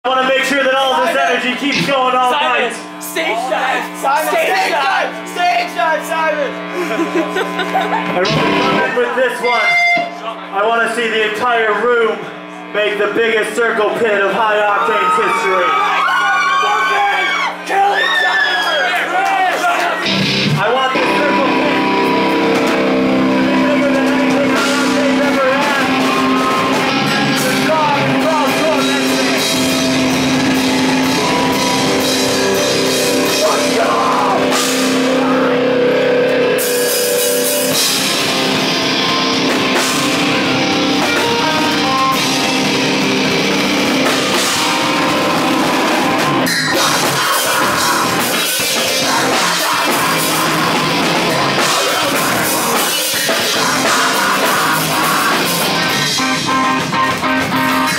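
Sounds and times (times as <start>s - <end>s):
heavy rock band playing: 0.1s - 17.7s, 19.8s - 57.9s.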